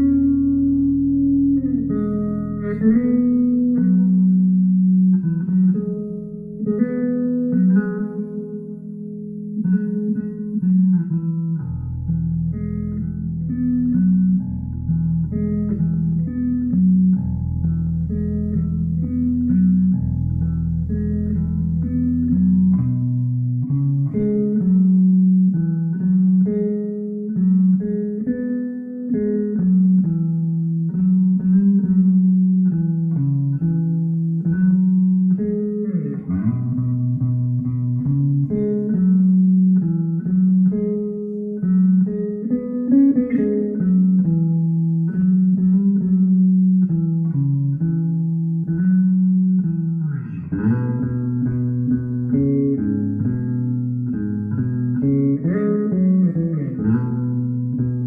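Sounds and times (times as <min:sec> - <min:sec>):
electric bass plucked notes: 0:00.0 - 0:58.0.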